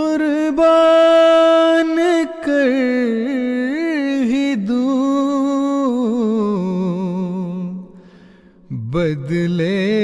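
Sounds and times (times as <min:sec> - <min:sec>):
man singing unaccompanied: 0:00.0 - 0:08.0, 0:08.6 - 0:10.0.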